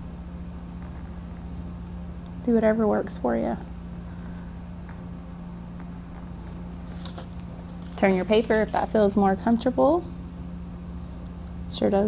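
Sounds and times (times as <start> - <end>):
steady low hum: 0.0 - 12.0
craft knife cutting paper: 6.8 - 9.1.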